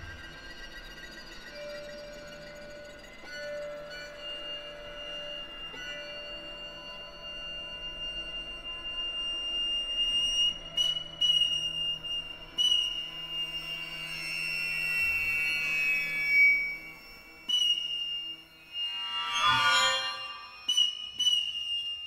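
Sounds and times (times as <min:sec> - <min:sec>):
high sustained tone: 0:00.0 - 0:22.0.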